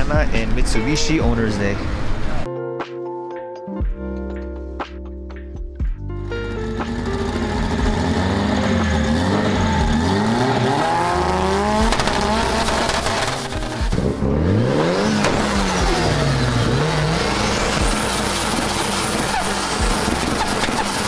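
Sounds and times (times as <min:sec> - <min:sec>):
car engine revving: 0:06.3 - 0:21.0.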